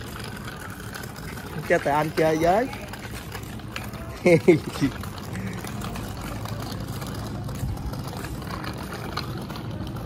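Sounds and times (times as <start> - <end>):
small motorbike engine running: 0.0 - 10.0.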